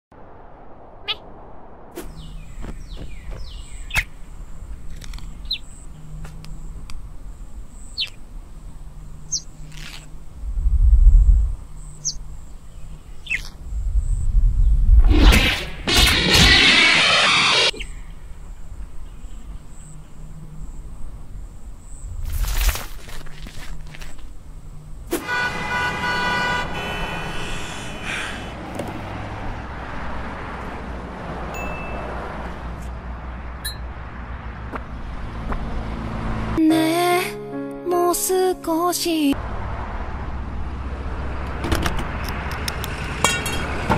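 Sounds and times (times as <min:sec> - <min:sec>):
loud noisy sound effect: 0:15.0 - 0:17.8.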